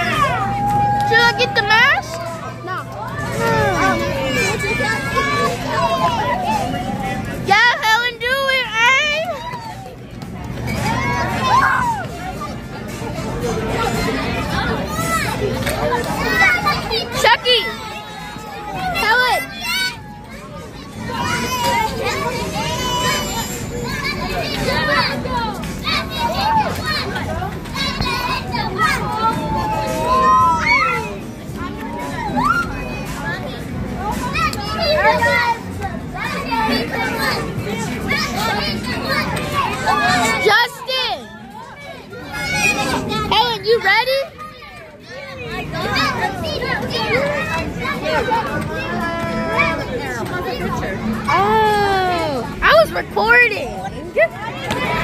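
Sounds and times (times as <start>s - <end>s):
children chattering in crowd: 0.0s - 55.0s.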